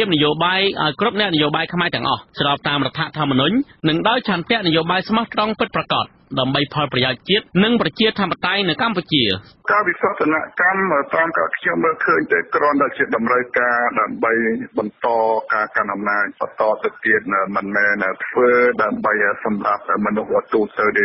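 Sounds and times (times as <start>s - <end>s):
news voice reading: 0.0s - 21.0s.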